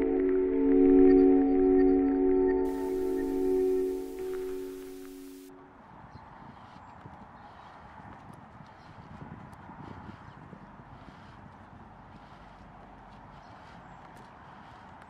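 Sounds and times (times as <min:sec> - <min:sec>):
ambient music drone: 0:00.0 - 0:05.9
faint outdoor ambience: 0:00.0 - 0:15.0
steady hiss: 0:02.7 - 0:05.5
footsteps on a path: 0:02.7 - 0:15.0.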